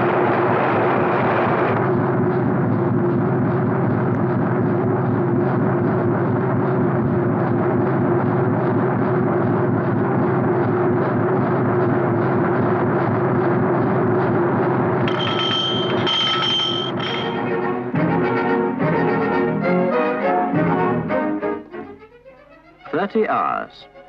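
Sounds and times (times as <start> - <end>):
ship engine droning: 0.0 - 21.8
orchestral music: 15.1 - 23.3.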